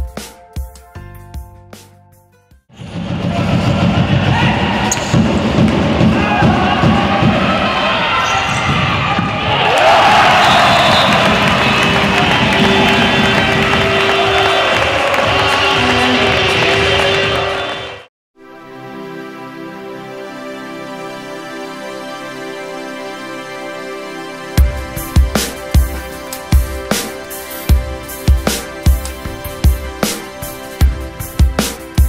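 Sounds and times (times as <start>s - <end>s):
players and spectators shouting: 6.0s - 18.1s.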